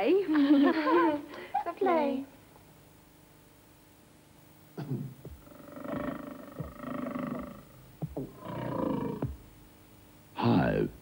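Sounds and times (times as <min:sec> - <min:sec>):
lion growling: 0:05.4 - 0:09.4.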